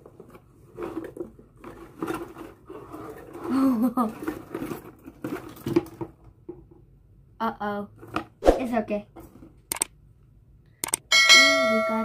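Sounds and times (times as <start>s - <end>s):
rustling and clattering in box: 0.0s - 6.8s, 9.1s - 9.7s.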